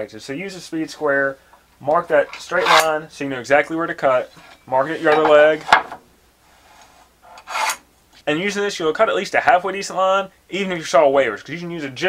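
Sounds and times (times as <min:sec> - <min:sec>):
faint rubbing: 0:04.0 - 0:05.7, 0:06.4 - 0:07.8.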